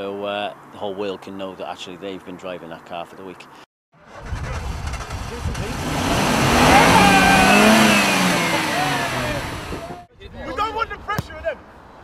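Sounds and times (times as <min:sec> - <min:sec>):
car engine passing by: 0:04.1 - 0:10.1.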